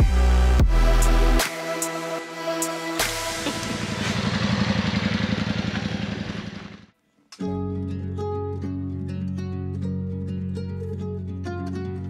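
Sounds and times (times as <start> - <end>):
motorcycle engine running: 3.1 - 6.9
plucked guitar music with bass: 7.4 - 12.0.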